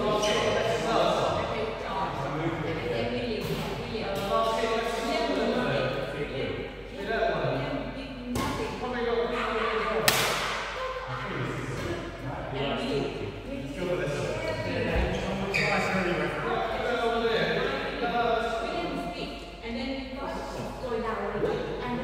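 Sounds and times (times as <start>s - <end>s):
men talking indistinctly: 0.0s - 7.8s, 11.0s - 18.9s
racket hitting shuttlecock: 10.0s - 10.8s.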